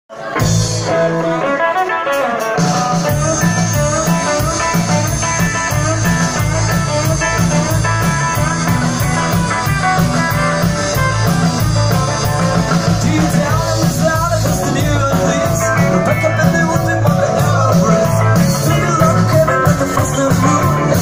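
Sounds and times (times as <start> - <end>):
electric guitars: 0.1 - 21.0
bass and drums: 0.2 - 21.0.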